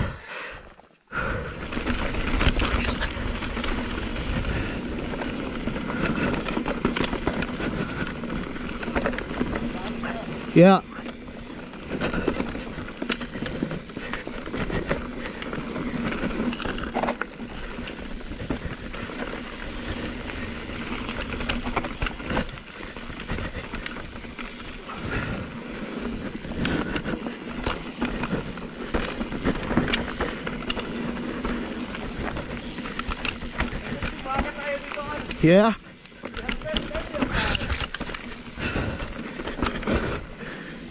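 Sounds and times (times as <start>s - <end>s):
bike tyres rolling over dirt: 0.0s - 40.9s
bike rattling and knocking: 1.4s - 40.9s.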